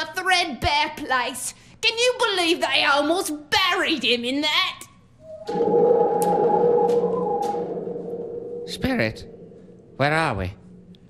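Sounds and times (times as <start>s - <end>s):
whirly tube humming: 5.2s - 11.0s.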